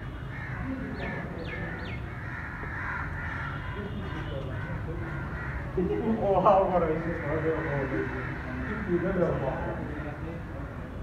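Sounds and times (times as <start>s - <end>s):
birds calling: 0.0s - 11.0s
low background noise: 0.0s - 11.0s
crows cawing: 0.1s - 11.0s.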